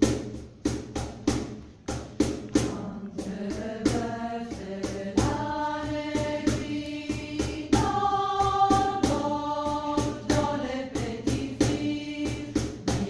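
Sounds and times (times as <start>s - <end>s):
steady percussive beat: 0.0s - 13.0s
mixed choir singing in harmony: 2.6s - 13.0s.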